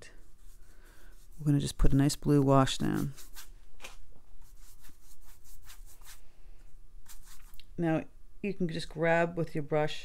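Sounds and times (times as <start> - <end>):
paintbrush swishes on paper: 0.1 - 6.2, 7.0 - 7.6.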